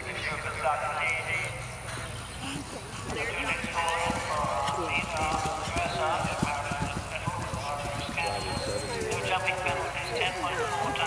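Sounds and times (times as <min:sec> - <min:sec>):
horse galloping on grass: 0:01.4 - 0:11.0
people talking: 0:02.4 - 0:11.0.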